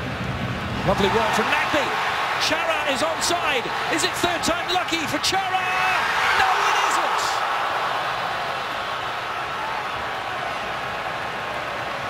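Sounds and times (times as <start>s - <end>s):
stadium crowd roaring: 0.0s - 12.0s.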